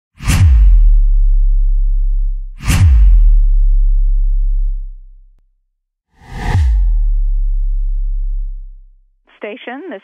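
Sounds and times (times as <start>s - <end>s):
cinematic whoosh and boom hits: 0.2s - 1.8s, 2.6s - 4.7s, 6.2s - 8.8s.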